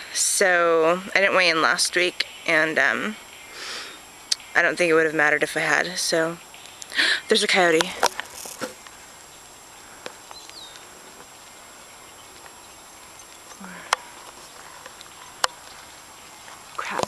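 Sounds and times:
outdoor background hiss: 0.0s - 17.0s.

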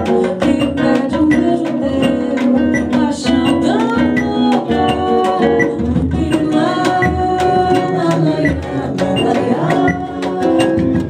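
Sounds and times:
cavaquinho strumming: 0.0s - 11.0s
percussion beat: 0.0s - 11.0s
woman singing: 0.0s - 11.0s.

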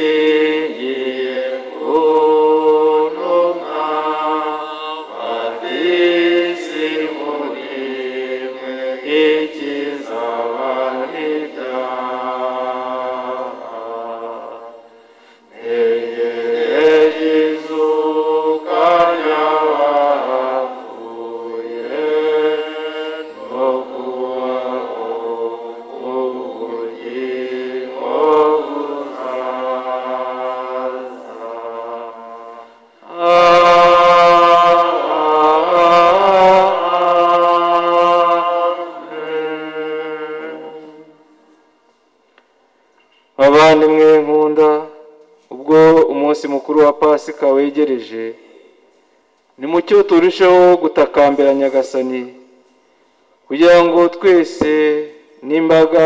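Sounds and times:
church choir singing a hymn: 0.0s - 41.4s, 53.5s - 56.0s.

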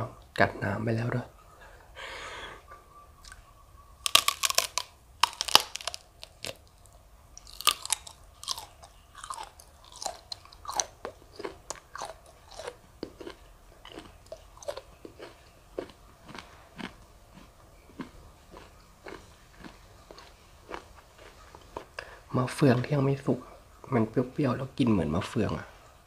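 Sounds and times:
chewing with small crunches: 3.2s - 23.0s
loud crunching bites: 4.0s - 6.7s, 7.4s - 21.9s.

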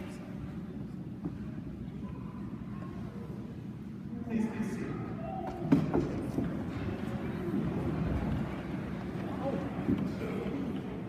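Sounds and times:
low rumble of crowded church: 0.0s - 11.0s.

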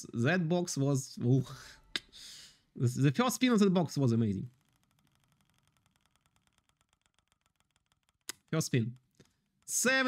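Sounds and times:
spin wheel ticking: 4.0s - 10.0s.

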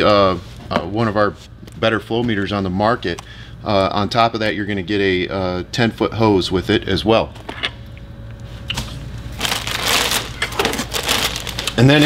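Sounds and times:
plastic packaging crinkling: 9.3s - 12.0s.

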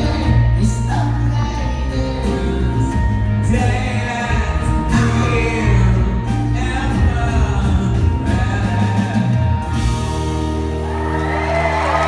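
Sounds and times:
live band with acoustic guitars: 0.0s - 12.0s
audience cheering and whooping: 10.6s - 12.0s.

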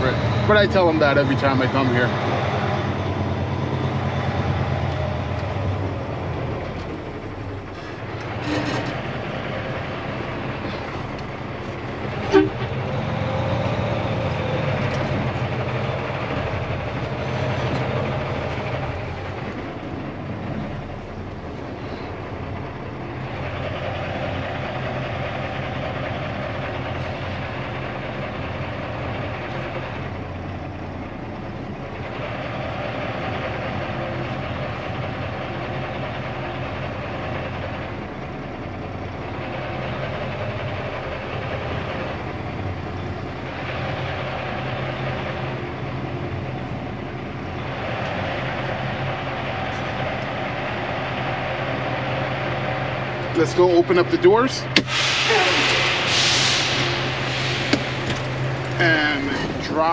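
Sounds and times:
truck diesel engine running: 0.0s - 59.9s.

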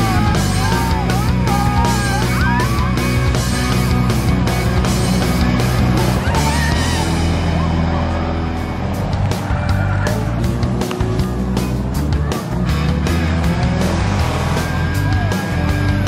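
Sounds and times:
background music with steady beat: 0.0s - 16.0s
race car engines: 0.0s - 16.0s.

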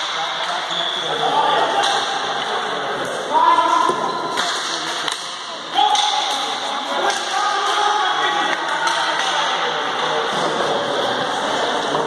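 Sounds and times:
hockey sticks and ball clacking: 0.0s - 12.0s.

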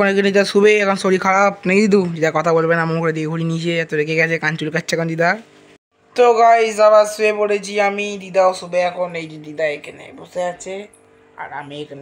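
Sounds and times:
person talking: 0.0s - 5.5s, 6.1s - 12.0s.

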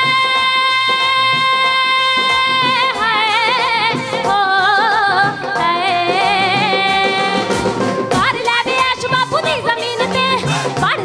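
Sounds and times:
person singing with vibrato: 0.0s - 11.0s
steady drum beat: 0.0s - 11.0s.

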